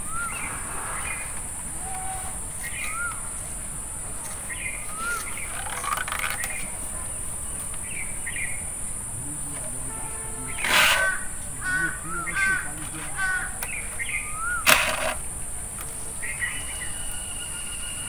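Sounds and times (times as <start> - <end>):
harsh caw-like bird calls: 0.0 - 3.4, 4.7 - 6.6, 10.4 - 15.2
wavering whistled bird calls: 0.0 - 8.7, 10.4 - 15.2, 16.0 - 18.0.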